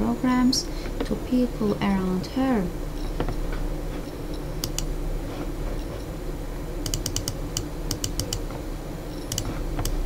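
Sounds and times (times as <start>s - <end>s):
steady low hum: 0.0s - 10.0s
computer mouse clicks: 4.6s - 4.9s, 6.8s - 8.5s, 9.3s - 10.0s.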